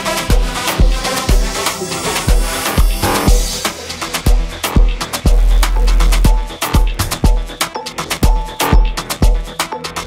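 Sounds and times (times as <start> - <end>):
afro house dance music: 0.0 - 10.0.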